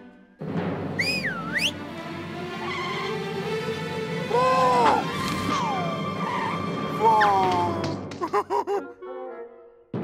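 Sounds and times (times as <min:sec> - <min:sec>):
cartoon background music: 0:00.0 - 0:10.0
sweeping whistle: 0:01.0 - 0:01.8.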